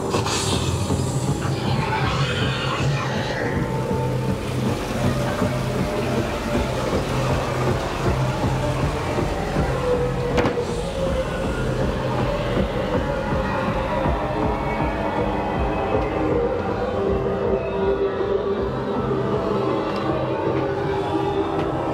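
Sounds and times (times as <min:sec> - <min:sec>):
low rumbling hum: 0:00.0 - 0:17.6
droning ambient music: 0:00.0 - 0:21.9.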